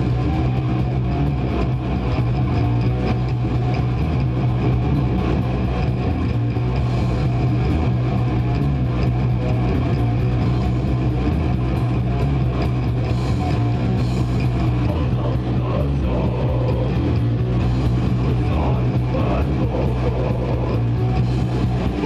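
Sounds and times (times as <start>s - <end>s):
death metal band playing live: 0.0s - 22.0s.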